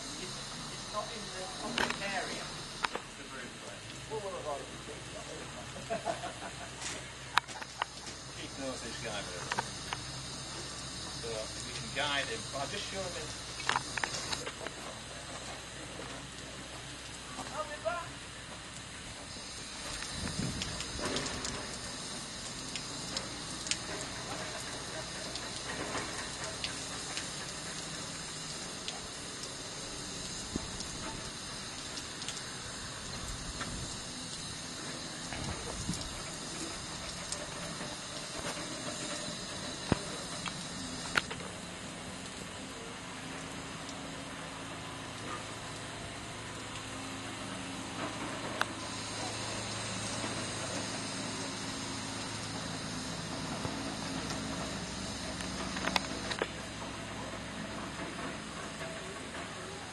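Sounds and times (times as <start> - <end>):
steam hissing: 0.0 - 59.9.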